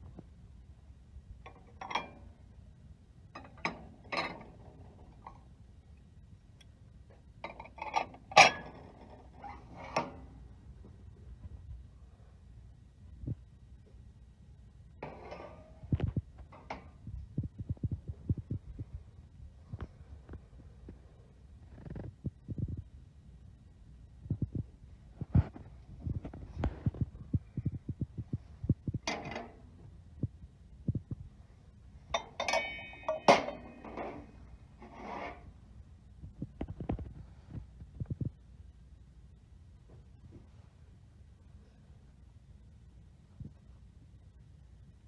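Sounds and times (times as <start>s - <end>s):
glass bowls and plates clinking: 32.2s - 34.2s.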